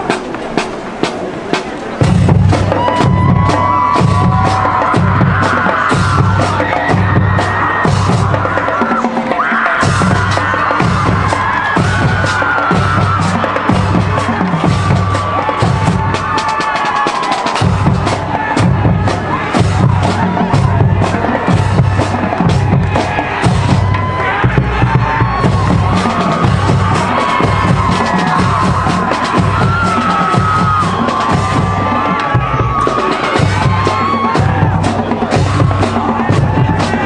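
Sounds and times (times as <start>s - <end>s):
marching band playing: 0.0s - 37.0s.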